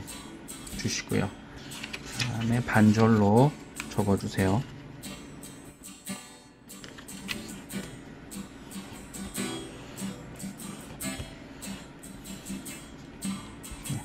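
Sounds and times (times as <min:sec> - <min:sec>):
acoustic guitar plucking: 0:00.0 - 0:14.0.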